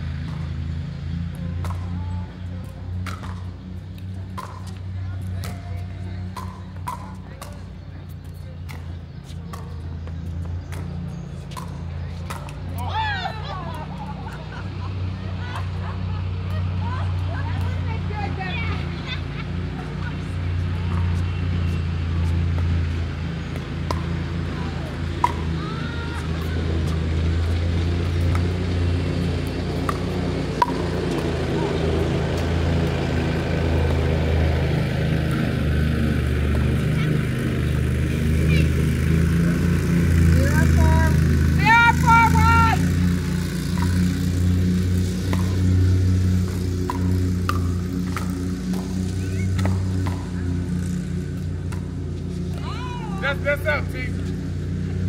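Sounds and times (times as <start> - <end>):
paddles popping against ball: 1.3 - 12.9, 20.8 - 25.6, 26.2 - 35.6, 43.7 - 50.7.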